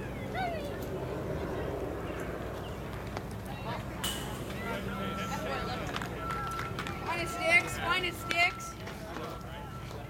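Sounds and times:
voices calling out: 0:03.4 - 0:10.0
faint steady high tone: 0:04.0 - 0:10.0.

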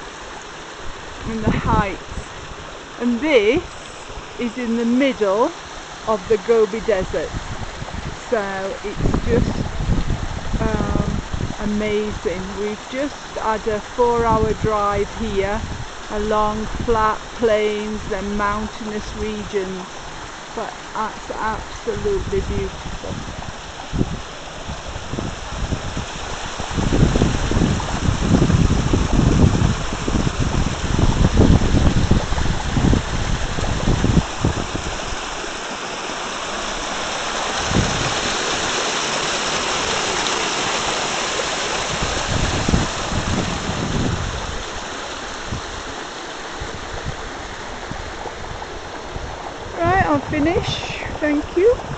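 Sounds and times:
water rushing over rocks: 0:00.0 - 0:51.9
low rumbling buffets: 0:49.1 - 0:51.9.

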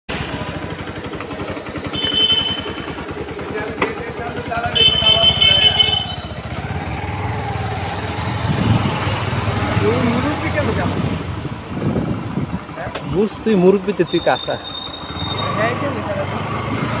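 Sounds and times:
motorcycle engine running: 0:00.1 - 0:17.0
horn beeps: 0:01.9 - 0:03.0, 0:04.7 - 0:06.4, 0:14.0 - 0:15.7.

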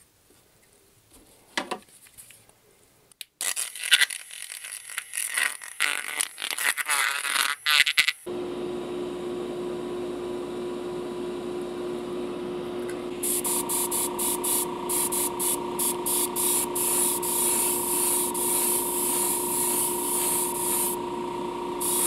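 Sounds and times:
motor humming: 0:08.3 - 0:22.0.

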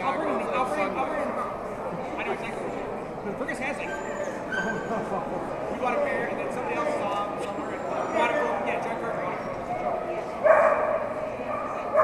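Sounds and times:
crowd chatter: 0:00.0 - 0:12.0
dog whining and yipping: 0:03.9 - 0:04.9.

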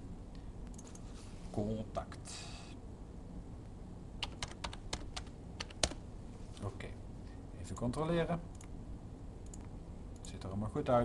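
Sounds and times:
computer keyboard typing: 0:04.2 - 0:06.0.

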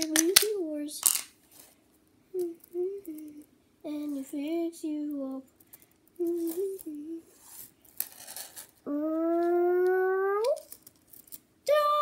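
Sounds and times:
child humming: 0:02.4 - 0:04.2, 0:06.2 - 0:07.3, 0:08.9 - 0:10.7
child singing: 0:02.4 - 0:05.5, 0:06.2 - 0:07.2, 0:11.7 - 0:12.0.

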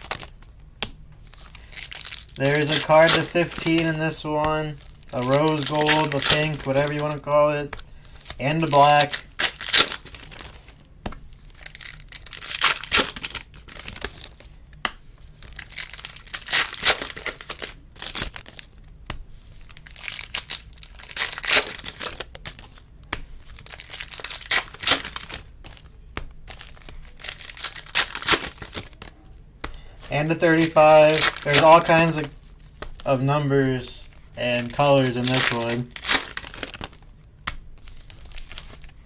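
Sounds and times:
foil wrappers crinkling and tearing: 0:00.0 - 0:00.5, 0:01.3 - 0:14.6, 0:15.3 - 0:39.0.

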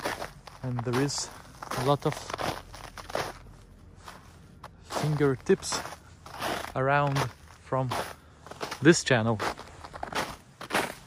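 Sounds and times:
footsteps in thin snow: 0:00.0 - 0:11.0.

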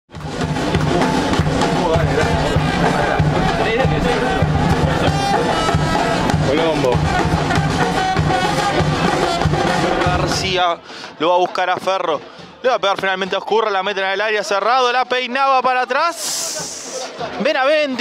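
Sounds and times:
song with drum beat and vocals: 0:00.1 - 0:13.3.

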